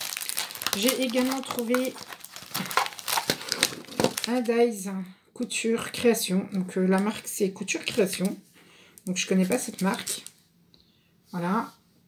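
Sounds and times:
packaging crinkling: 0.0s - 4.6s, 9.0s - 10.4s.

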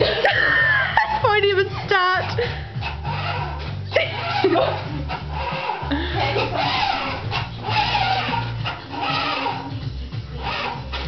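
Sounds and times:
person laughing: 0.0s - 2.7s, 3.9s - 6.6s
music with bass line: 0.0s - 11.0s.

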